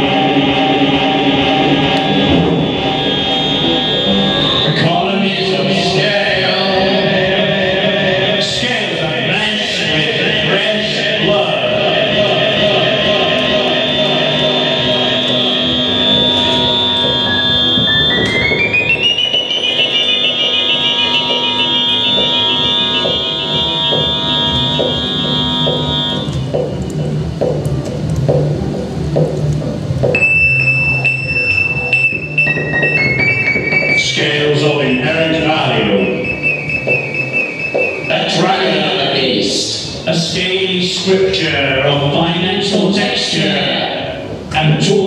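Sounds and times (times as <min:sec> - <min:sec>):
buzzing sustained tones: 0:00.0 - 0:07.1, 0:10.7 - 0:40.1
dense noisy texture: 0:00.0 - 0:45.0
electronic drones: 0:00.0 - 0:45.0
high stepping tone: 0:00.8 - 0:04.9, 0:11.7 - 0:26.9, 0:35.7 - 0:39.1.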